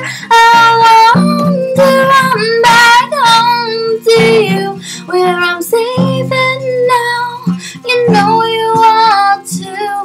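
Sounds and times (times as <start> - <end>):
guitar accompaniment: 0.0 - 10.0
woman singing: 0.0 - 10.0.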